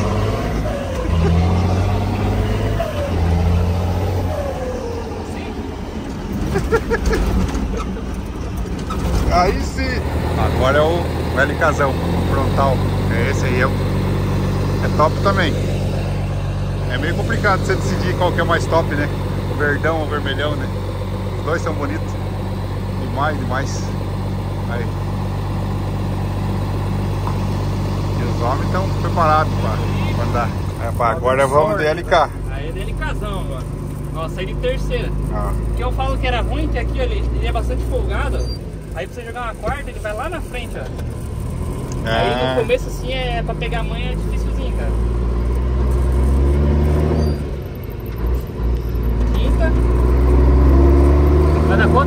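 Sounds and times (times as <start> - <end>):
truck diesel engine idling: 0.0 - 46.2.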